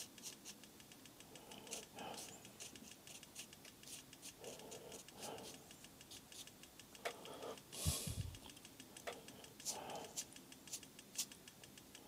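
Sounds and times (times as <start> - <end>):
brush dabbing on paper: 0.0 - 11.4.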